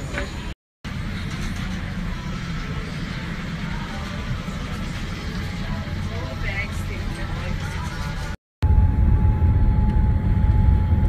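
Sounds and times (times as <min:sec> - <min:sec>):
aircraft cabin air system rumble: 0:00.0 - 0:11.0.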